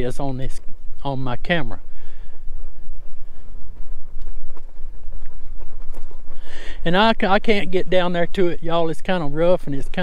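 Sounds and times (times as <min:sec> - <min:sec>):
bike riding rumble: 0:00.0 - 0:10.0
wind buffeting microphone: 0:00.0 - 0:10.0.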